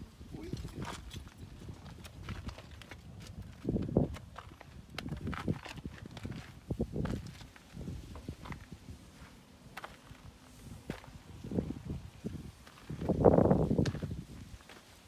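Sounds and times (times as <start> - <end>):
footsteps on gravel: 0.5 - 15.0.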